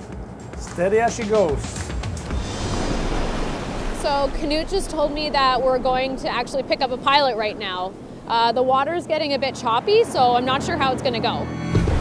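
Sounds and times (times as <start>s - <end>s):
rushing boat wake water: 0.3s - 12.0s.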